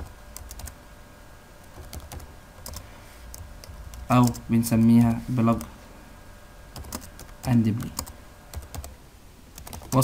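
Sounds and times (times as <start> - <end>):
computer keyboard typing: 0.0 - 0.8, 1.6 - 5.7, 6.7 - 10.0.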